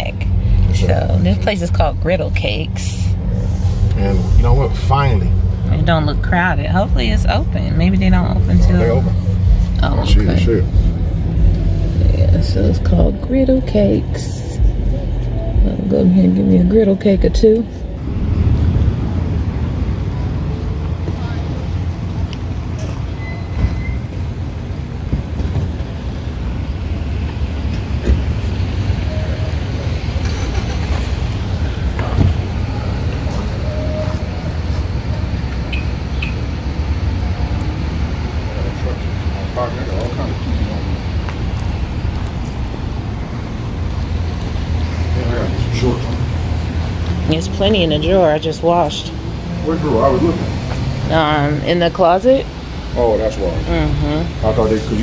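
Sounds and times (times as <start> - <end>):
road traffic rumble: 0.0 - 55.0.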